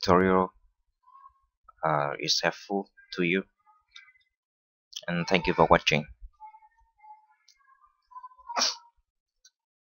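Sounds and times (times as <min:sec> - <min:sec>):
person sneezing: 0:08.6 - 0:08.8.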